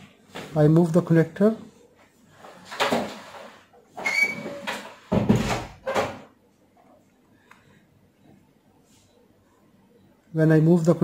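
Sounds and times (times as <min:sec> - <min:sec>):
short squeak: 0:04.0 - 0:04.7.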